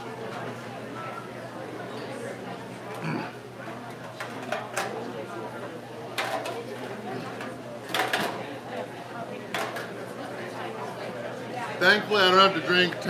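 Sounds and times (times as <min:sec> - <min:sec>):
background chatter in bar: 0:00.0 - 0:13.0.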